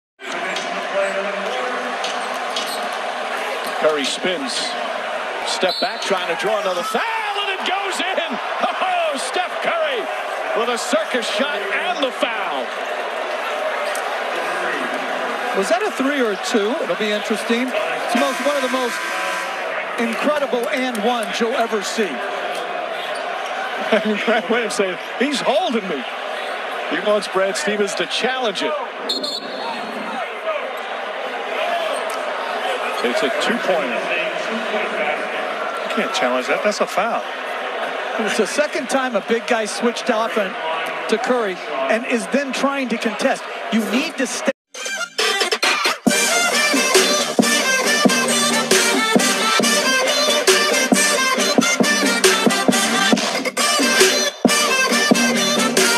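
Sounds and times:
arena noise: 0.2 - 55.9
commentator speaking: 3.8 - 4.8, 5.4 - 12.8, 14.6 - 19.2, 19.9 - 22.2, 23.9 - 26.1, 26.9 - 28.9, 38.2 - 44.6.

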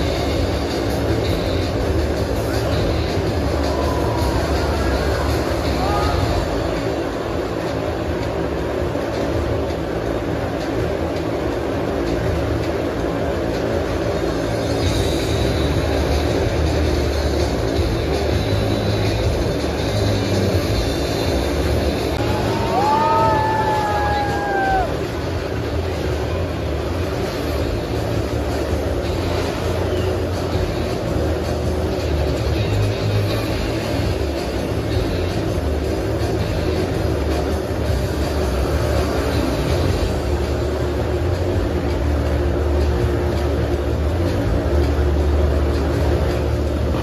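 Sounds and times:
loud show music: 0.0 - 47.0
motorcycle engines running: 0.0 - 47.0.

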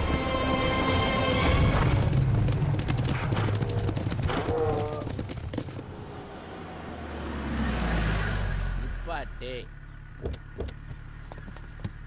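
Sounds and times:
car driving past: 5.8 - 9.1.

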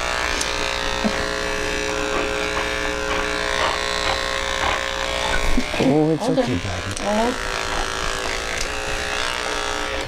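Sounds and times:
electric hair clippers humming: 0.0 - 10.0.

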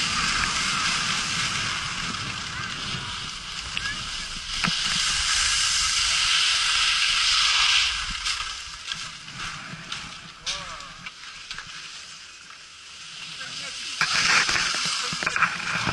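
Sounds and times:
skis scraping over snow: 0.0 - 15.9.

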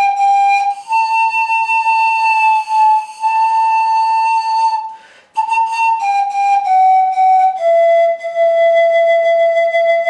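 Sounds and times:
pan flute high notes: 0.0 - 10.0.

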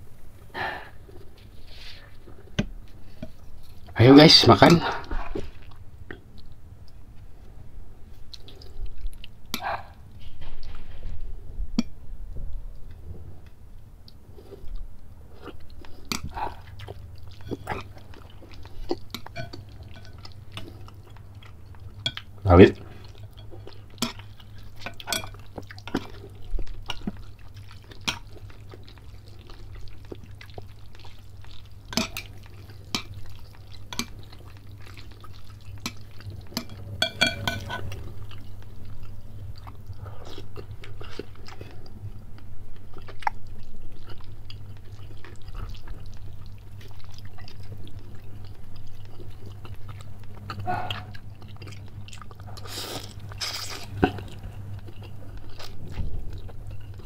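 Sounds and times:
steady low hum: 0.0 - 57.0
man chewing: 8.1 - 11.0, 14.0 - 57.0.

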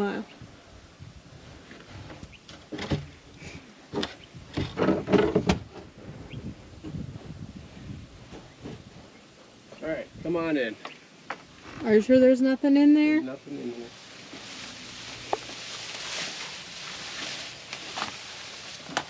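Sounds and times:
wooden door knocking and scraping: 4.0 - 5.9.

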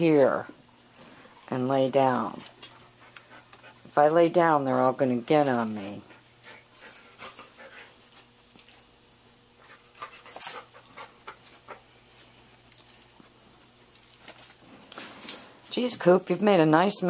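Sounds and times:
dog panting: 2.6 - 3.9, 6.0 - 8.3, 9.6 - 11.9.

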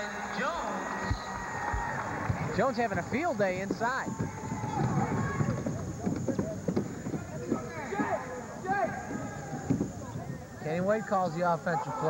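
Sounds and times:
crowd voices: 0.0 - 12.0
feet on hardwood court: 1.1 - 10.4
ball bouncing on hardwood: 2.2 - 10.2.

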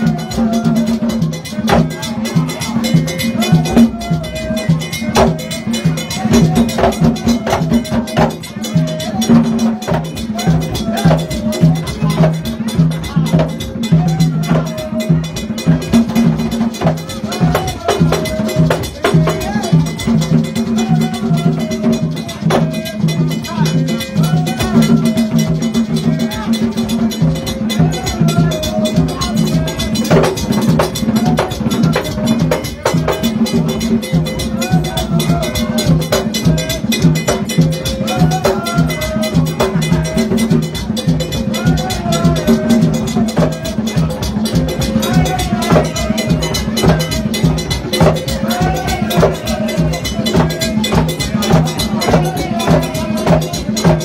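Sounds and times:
repeating percussion rhythm: 0.0 - 54.0
voices singing: 0.0 - 54.0.

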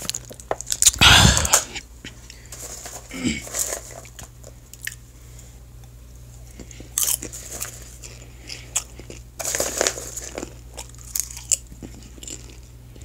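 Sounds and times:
popcorn being chewed: 0.0 - 13.0.

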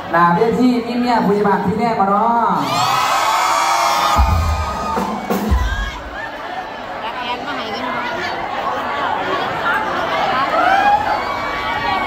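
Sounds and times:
audience cheering and screaming: 2.6 - 6.8, 10.4 - 12.0.

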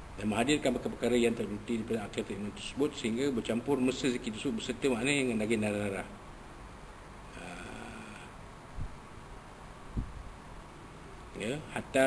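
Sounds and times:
man humming low: 7.3 - 8.4.

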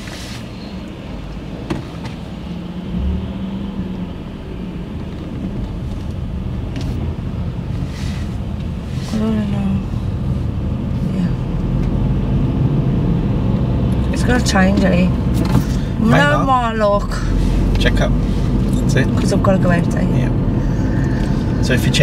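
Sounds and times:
car engine accelerating: 0.0 - 22.0
road noise inside car: 0.0 - 22.0.

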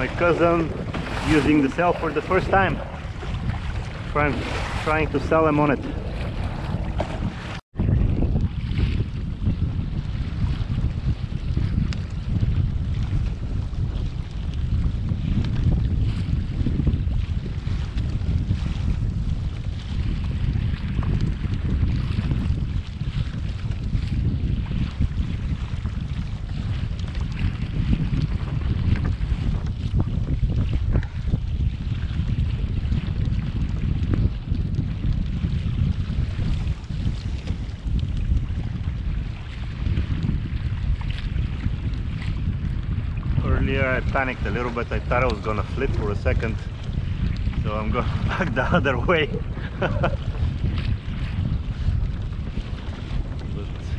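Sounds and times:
water washing against hull: 0.0 - 53.9
wind buffeting microphone: 0.0 - 53.9.

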